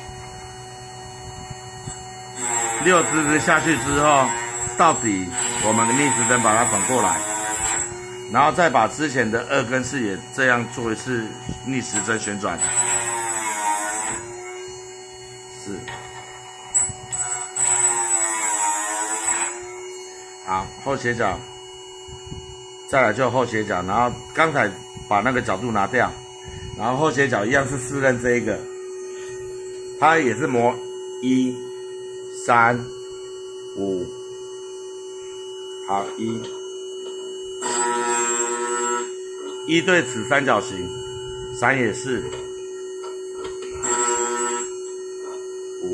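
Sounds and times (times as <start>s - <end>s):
grinder motor running: 0.0s - 45.9s
machine humming: 0.0s - 45.9s.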